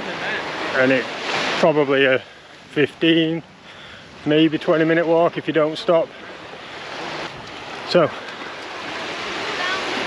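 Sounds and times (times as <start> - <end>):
small waves washing on sand: 0.0 - 10.0.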